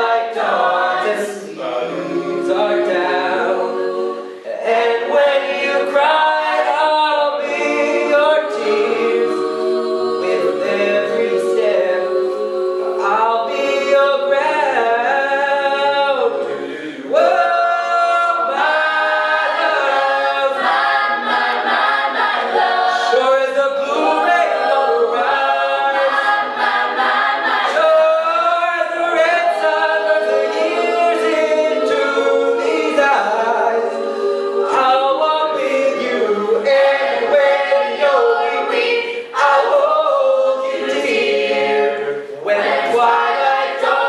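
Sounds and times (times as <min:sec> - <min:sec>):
a cappella group singing: 0:00.0 - 0:44.0.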